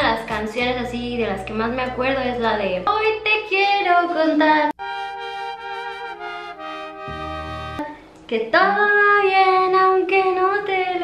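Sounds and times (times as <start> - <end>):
trumpet melody in pop song: 4.8 - 7.9.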